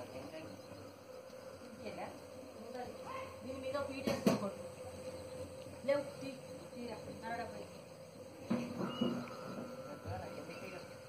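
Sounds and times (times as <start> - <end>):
faint voices: 0.0 - 11.0
insect buzzing: 0.0 - 11.0.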